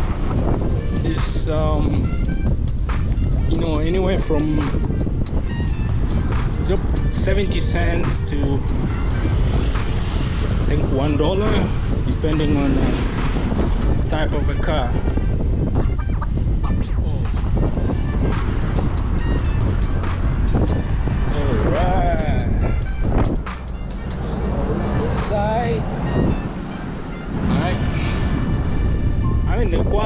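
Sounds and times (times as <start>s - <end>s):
road traffic passing: 0.0s - 29.8s
wind rumbling on microphone: 0.0s - 30.0s.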